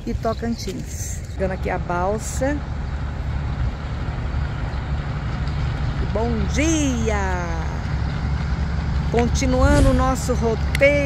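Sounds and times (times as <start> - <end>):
loud low engine hum: 0.0 - 11.0.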